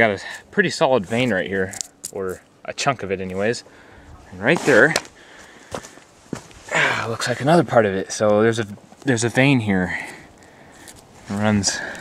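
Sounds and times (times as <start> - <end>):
dry grass rustling: 8.8 - 12.0.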